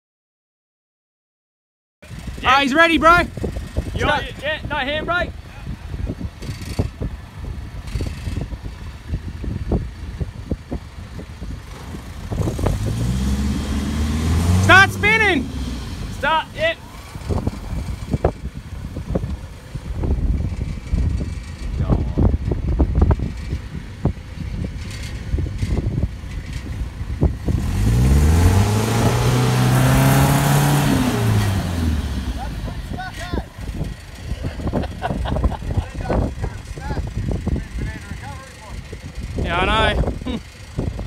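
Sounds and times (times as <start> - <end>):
wind rumble on microphone: 2.0 - 16.3, 16.9 - 41.0
car engine revving: 11.6 - 21.7, 24.7 - 35.6.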